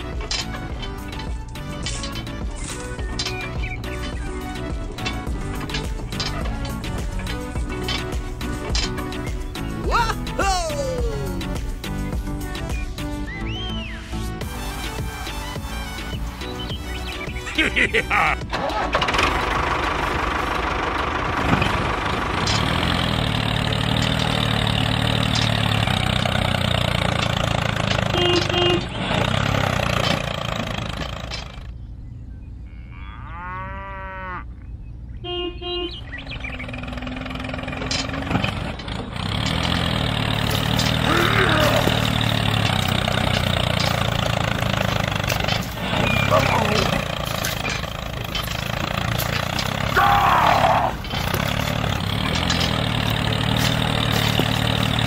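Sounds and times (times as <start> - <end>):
model tractor engine running: 18.5 - 31.8, 36.1 - 55.0.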